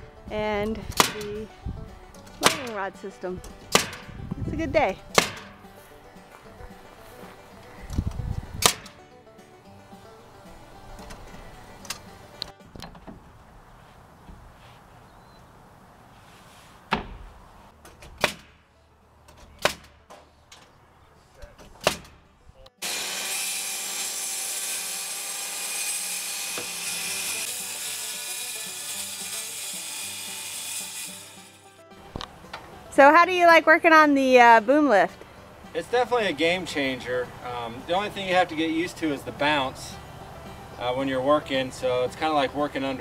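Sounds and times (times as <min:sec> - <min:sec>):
sharp knocks on roof: 0:16.9 - 0:17.3.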